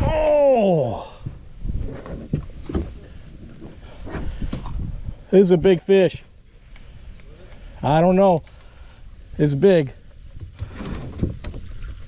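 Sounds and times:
wind rumbling on microphone: 0.0s - 12.0s
water slapping boat hull: 10.2s - 12.0s.

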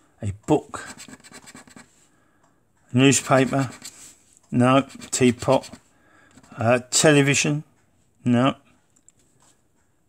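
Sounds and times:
scraping scratchcard panel: 3.1s - 4.0s, 4.8s - 5.8s.

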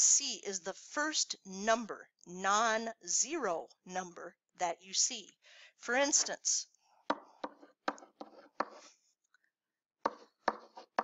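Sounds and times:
stylus tapping on tablet: 7.1s - 8.8s, 10.1s - 11.0s.

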